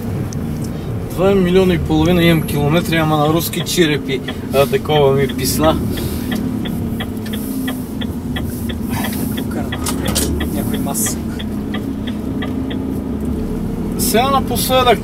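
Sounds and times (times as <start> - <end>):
diesel truck engine running: 0.0 - 15.0
low road rumble: 0.0 - 15.0
light ticking: 3.5 - 4.6, 5.2 - 14.0.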